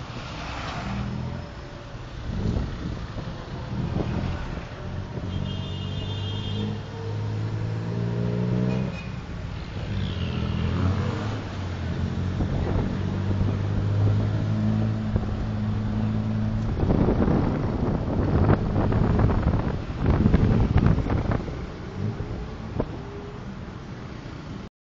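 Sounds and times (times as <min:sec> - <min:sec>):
wind gusts over microphone: 0:02.1 - 0:05.4, 0:10.9 - 0:23.1.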